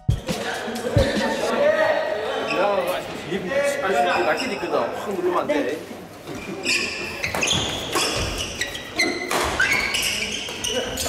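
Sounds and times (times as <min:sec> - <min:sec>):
men's voices talking: 0:00.2 - 0:06.2.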